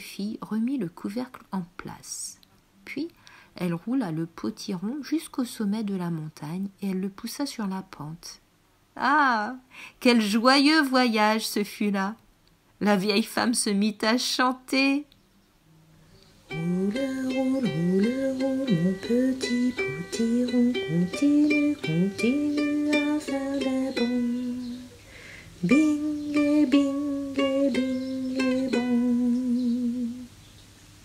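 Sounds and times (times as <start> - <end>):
plucked string accompaniment: 16.5 - 24.9, 25.8 - 30.1
person singing: 16.5 - 30.3.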